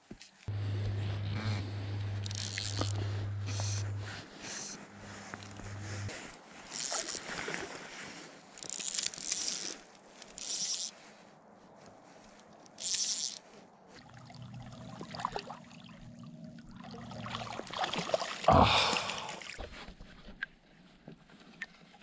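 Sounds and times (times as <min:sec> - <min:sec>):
fishing reel drag buzzing: 0:00.5 - 0:06.1, 0:06.7 - 0:07.3, 0:08.6 - 0:10.9, 0:12.8 - 0:13.4
low steady hum: 0:00.5 - 0:06.3, 0:14.0 - 0:19.3
water sounds: 0:14.0 - 0:20.5.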